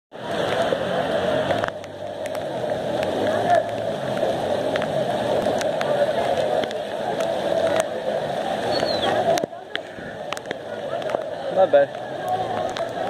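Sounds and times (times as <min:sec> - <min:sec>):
rain and rushing floodwater: 0:00.1 - 0:13.0.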